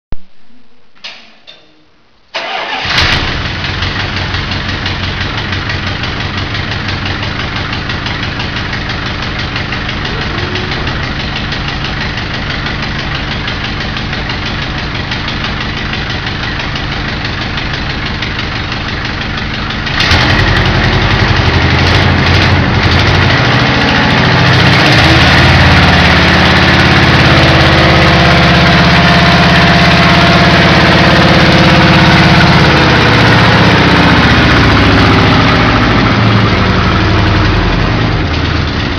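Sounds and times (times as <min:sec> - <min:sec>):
car engine starting and running: 0:02.3 - 0:38.9
engine revving: 0:02.4 - 0:38.9.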